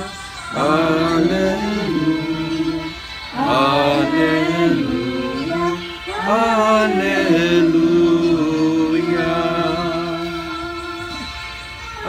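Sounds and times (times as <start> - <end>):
liturgical chant singing: 0.0 - 11.3.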